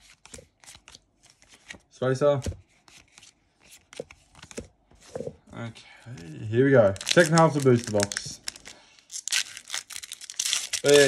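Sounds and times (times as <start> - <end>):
foil wrapper tearing: 7.0 - 11.0.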